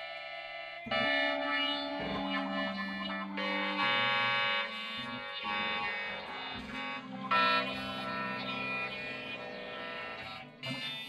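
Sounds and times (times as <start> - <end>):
electric guitar buzzy tones: 0.0 - 11.0.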